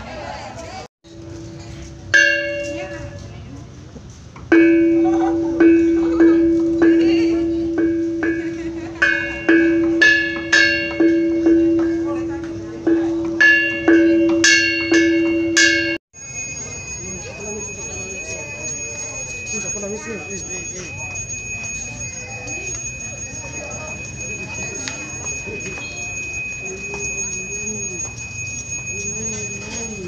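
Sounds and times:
bronze kettle gong ringing: 1.1 - 3.2, 4.5 - 30.0
gongs struck with stick: 1.1 - 3.4, 4.5 - 16.0.

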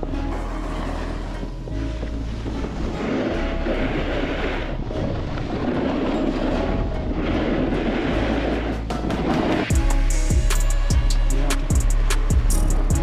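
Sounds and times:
skis sliding over packed snow: 0.3 - 9.7
wind buffeting microphone: 1.0 - 9.8.

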